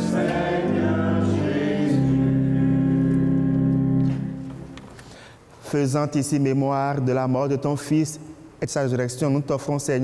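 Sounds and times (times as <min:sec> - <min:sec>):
church choir singing chords: 0:00.0 - 0:04.9.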